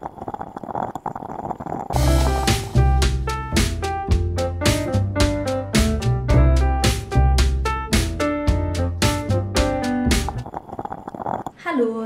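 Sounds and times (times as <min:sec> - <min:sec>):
rapid irregular clicks: 0:00.0 - 0:02.8, 0:09.8 - 0:11.6
music: 0:02.0 - 0:10.4.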